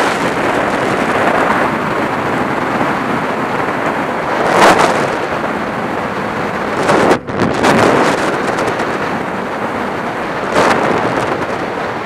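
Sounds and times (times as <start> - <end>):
wind roaring over microphone: 0.0 - 12.0.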